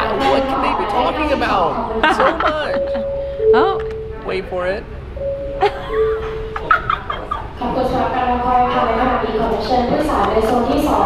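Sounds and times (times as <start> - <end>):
two-note loudspeaker chime: 2.7 - 7.0
person laughing: 5.6 - 7.6.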